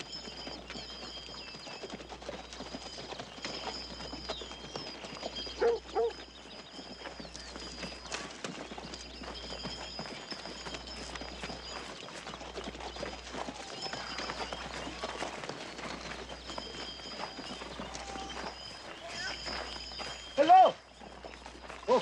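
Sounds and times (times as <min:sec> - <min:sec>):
hooves clip-clopping on dry ground: 0:00.0 - 0:22.0.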